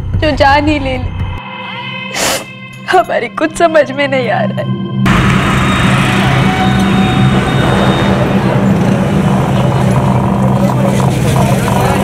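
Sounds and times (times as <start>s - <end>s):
motorbike and car traffic: 5.1s - 12.0s.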